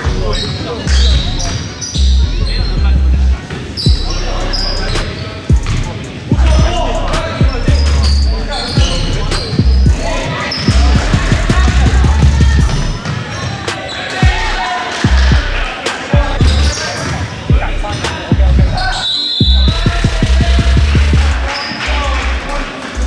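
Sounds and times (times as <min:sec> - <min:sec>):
sneakers squeaking: 0:00.0 - 0:22.0.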